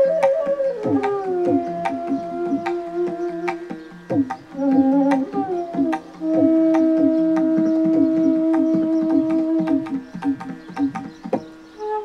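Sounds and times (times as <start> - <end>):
bamboo flute long low note: 0.0 - 12.0
hand drum strokes: 0.0 - 12.0.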